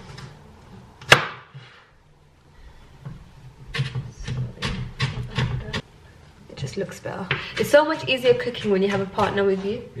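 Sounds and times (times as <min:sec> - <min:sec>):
knife chopping onion on board: 0:07.3 - 0:09.6.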